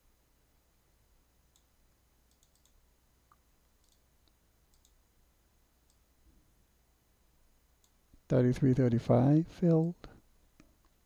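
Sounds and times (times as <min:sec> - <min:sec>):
mouse and keyboard clicks: 0:02.3 - 0:05.0.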